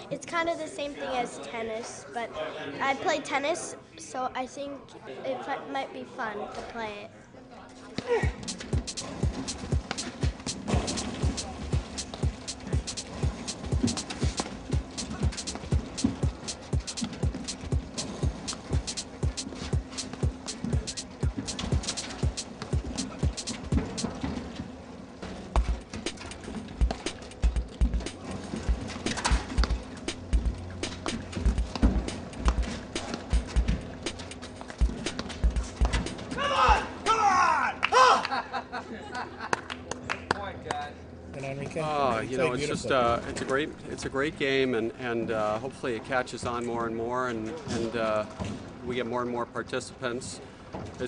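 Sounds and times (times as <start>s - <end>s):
music with fast percussive beat: 8.2s - 24.3s, 25.6s - 37.0s.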